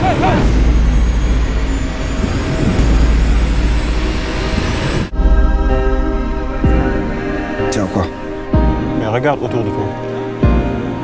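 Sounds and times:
dense low rumble: 0:00.0 - 0:10.9
music with sustained chords: 0:00.0 - 0:11.0.

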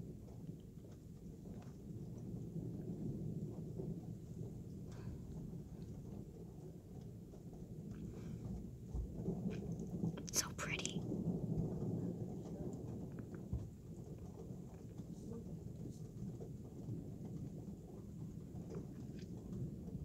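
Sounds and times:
thunder rumbling: 0:00.0 - 0:20.0.

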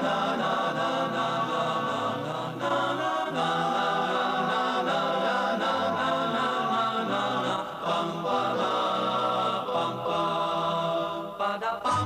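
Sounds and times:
voices singing wordless chords: 0:00.0 - 0:12.0.

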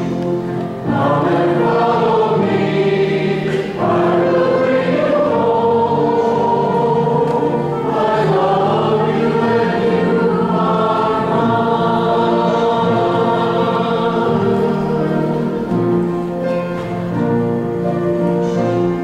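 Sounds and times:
choir and congregation singing hymn: 0:00.0 - 0:19.0.

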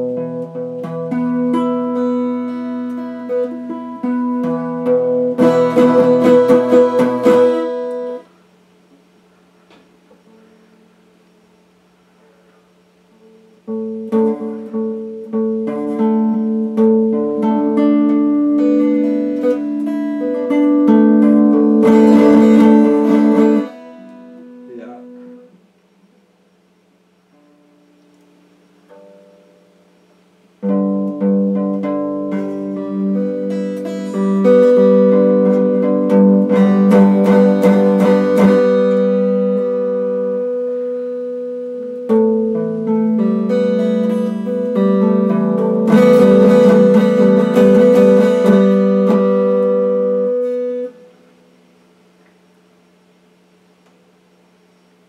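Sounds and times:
electric guitar chords: 0:00.0 - 0:11.8, 0:12.9 - 0:52.5.

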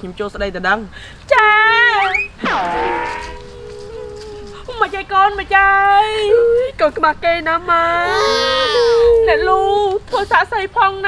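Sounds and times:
woman wailing: 0:01.7 - 0:06.8.

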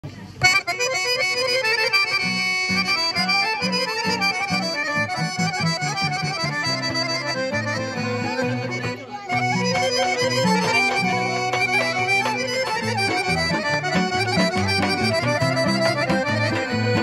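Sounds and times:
accordion: 0:00.0 - 0:17.0
acoustic guitar: 0:00.0 - 0:17.0
clarinet: 0:00.4 - 0:17.0
rhythmic bass beat: 0:00.4 - 0:17.0.

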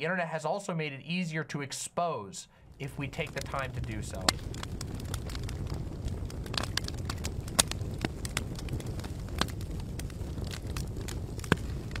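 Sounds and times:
fire crackling and popping: 0:02.5 - 0:12.0.

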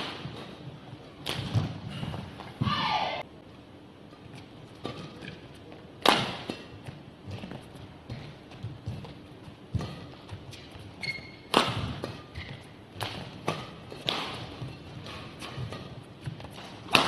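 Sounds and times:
racket striking shuttlecock: 0:00.0 - 0:00.6, 0:01.2 - 0:02.2, 0:04.7 - 0:17.0.

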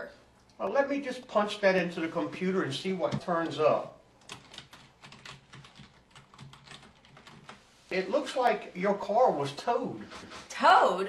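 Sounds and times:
typing on computer keyboard: 0:04.2 - 0:07.6.

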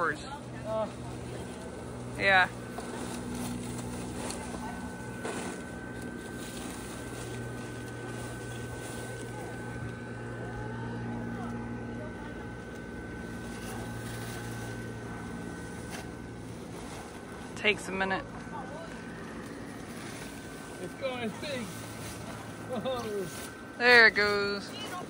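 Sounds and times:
electric blower fan humming: 0:00.0 - 0:25.0.

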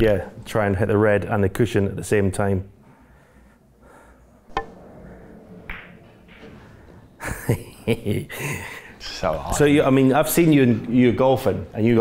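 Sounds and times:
cue tip striking ball: 0:04.5 - 0:04.8.

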